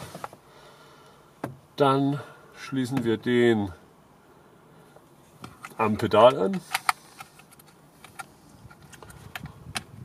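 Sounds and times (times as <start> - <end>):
faint rustling of wiring: 4.9 - 10.0.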